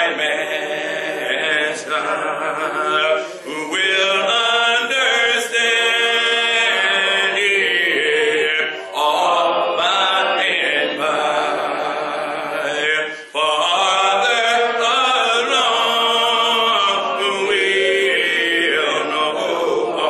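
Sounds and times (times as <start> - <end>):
man singing unaccompanied: 0.0 - 20.0.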